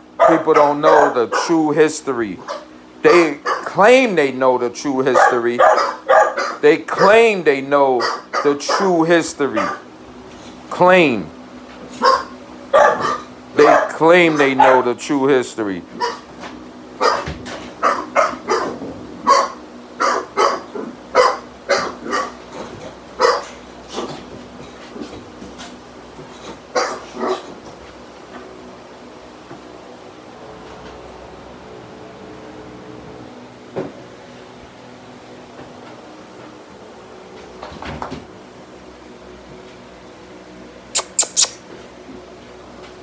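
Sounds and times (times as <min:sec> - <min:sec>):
steady low hum: 0:00.0 - 0:43.0
dog barking: 0:00.2 - 0:01.5, 0:02.4 - 0:03.8, 0:05.1 - 0:07.2, 0:08.0 - 0:08.9, 0:09.6 - 0:09.8, 0:12.0 - 0:14.9, 0:16.0 - 0:16.2, 0:17.0 - 0:22.4, 0:23.2 - 0:23.6, 0:26.8 - 0:27.5.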